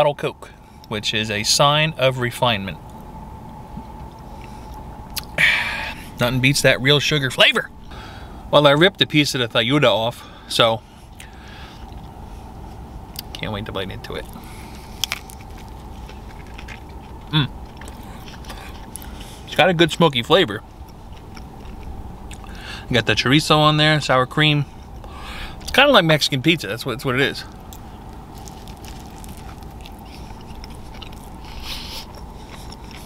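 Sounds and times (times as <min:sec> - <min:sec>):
steady low hum: 0:00.0 - 0:33.0
quiet chewing: 0:11.1 - 0:13.3, 0:14.2 - 0:19.5, 0:20.7 - 0:22.6, 0:27.5 - 0:33.0
crunch of biting tortilla: 0:14.3 - 0:19.2, 0:27.7 - 0:33.0
person saying mmm: 0:17.3 - 0:17.5.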